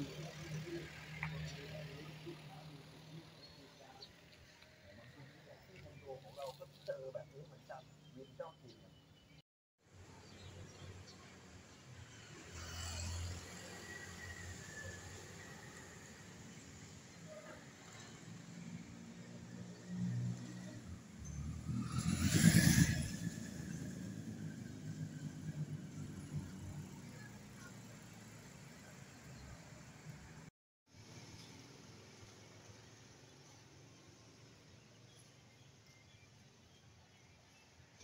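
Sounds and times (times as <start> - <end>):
passing cars and motorbikes: 0.0 - 8.8, 10.0 - 35.6
vehicle passing close: 20.0 - 28.5.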